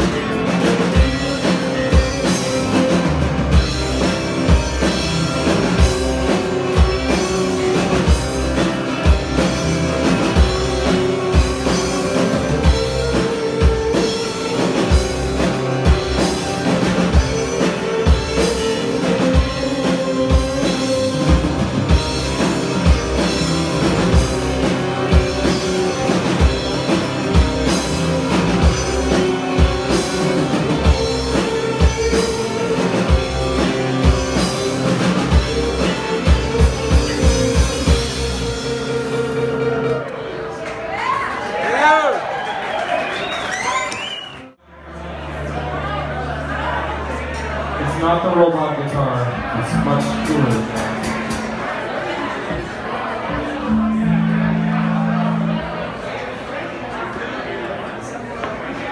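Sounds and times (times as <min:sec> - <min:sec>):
instrumental rock band playing: 0:00.0 - 0:40.5, 0:49.4 - 0:56.5.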